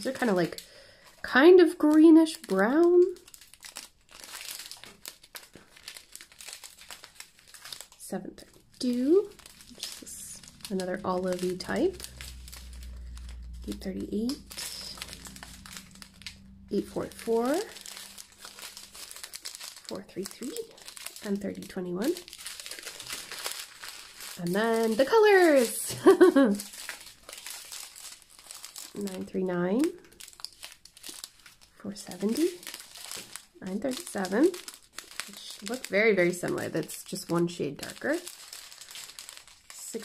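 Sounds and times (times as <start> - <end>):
plastic bags crinkling: 0.0 - 40.0.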